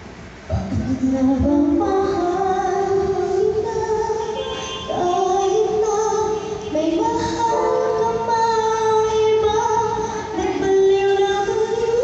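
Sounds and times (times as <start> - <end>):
girl singing a ballad: 0.5 - 12.0.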